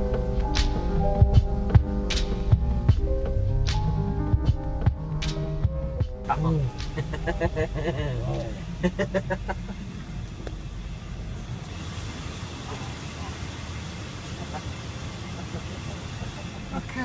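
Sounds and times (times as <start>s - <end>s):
car engine running inside cabin: 0.0s - 17.0s.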